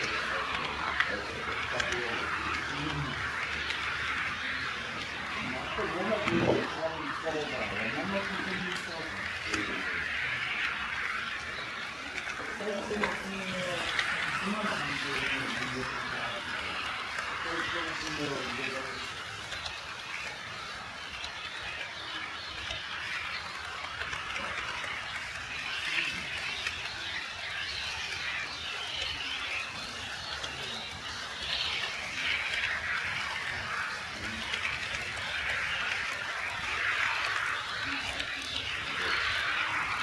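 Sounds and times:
model train rolling on track: 0.0s - 40.0s.

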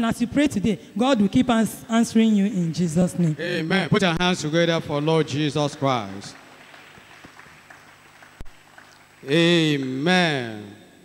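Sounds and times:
faint hall background hiss: 0.0s - 11.0s.

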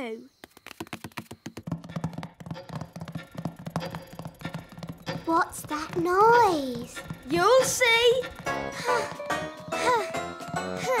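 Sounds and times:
clock ticking rapidly: 1.5s - 10.9s
light music: 2.4s - 11.0s.

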